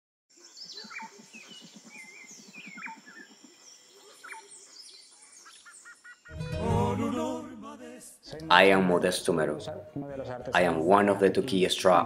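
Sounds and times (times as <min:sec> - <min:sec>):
birds chirping and whistling: 0:00.4 - 0:06.3.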